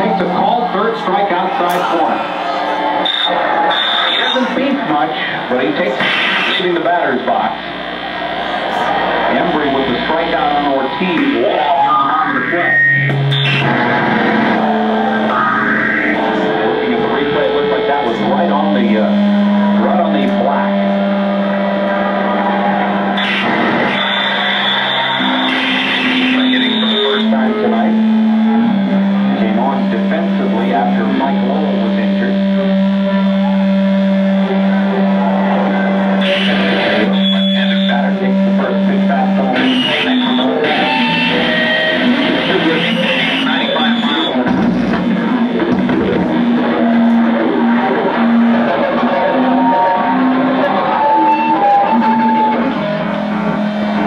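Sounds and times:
electric guitars droning: 0.0 - 54.0.

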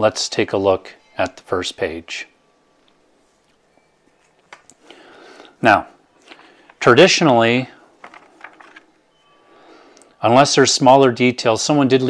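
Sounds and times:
faint thin tone: 0.8 - 4.4, 9.0 - 9.9
comic book pages turning: 8.0 - 8.9.

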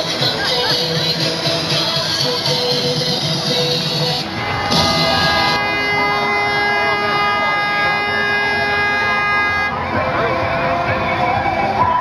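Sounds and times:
crowd noise: 0.0 - 12.0
horn long steady note: 1.8 - 11.2.

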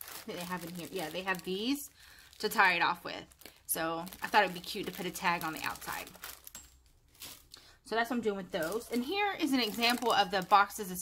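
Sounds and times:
plastic bag crinkling: 0.0 - 7.7, 8.5 - 11.0.

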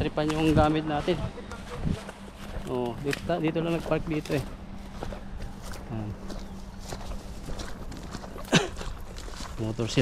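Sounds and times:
footsteps through tall grass: 0.0 - 10.0
vegetation brushing: 0.0 - 10.0.

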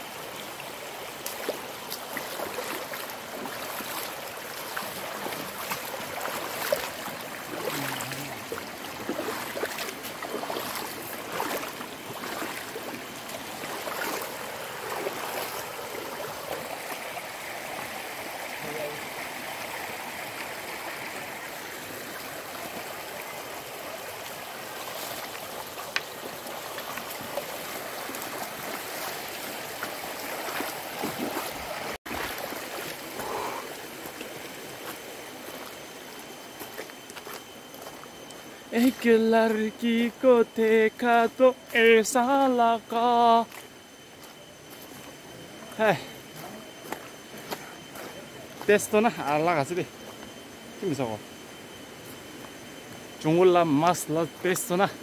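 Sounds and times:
stream running over stones: 0.0 - 50.0.

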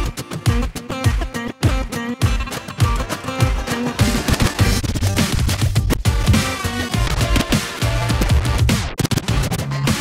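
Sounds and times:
turntable scratching drum and bass beat: 0.0 - 10.0.

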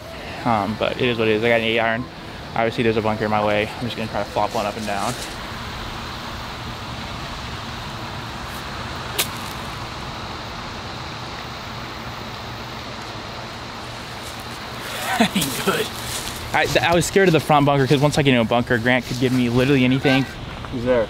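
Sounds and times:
outdoor background hiss: 0.0 - 21.0
golf club striking ball: 9.1 - 9.7.

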